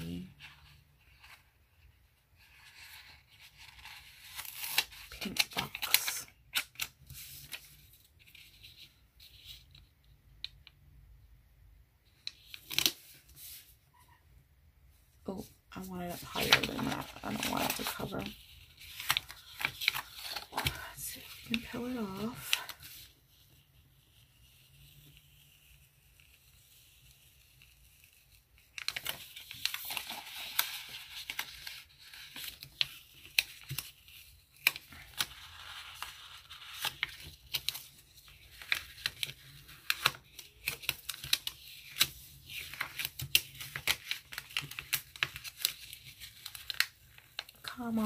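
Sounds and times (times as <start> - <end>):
paper crinkling and rustling: 2.4 - 9.9, 15.4 - 23.4, 27.4 - 48.0.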